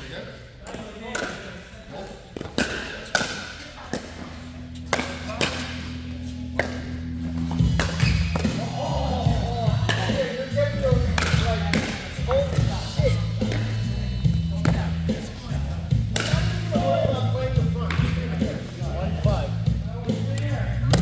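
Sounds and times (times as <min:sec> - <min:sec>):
paddles hitting plastic ball: 0:00.6 - 0:01.5, 0:02.4 - 0:04.2, 0:16.1 - 0:16.7
background music with bass line: 0:04.6 - 0:21.0.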